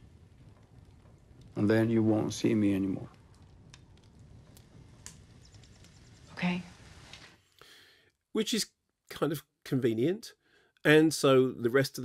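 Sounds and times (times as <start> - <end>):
faint soft clicks: 3.0 - 6.3.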